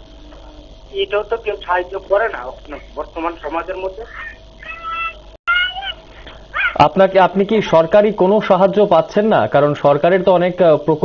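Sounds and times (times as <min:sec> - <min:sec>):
high-pitched wavering cries: 0:04.0 - 0:07.0.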